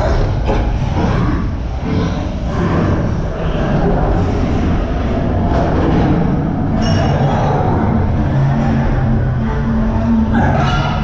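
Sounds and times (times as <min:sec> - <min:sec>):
coaster car rumbling and rattling: 0:00.0 - 0:11.0.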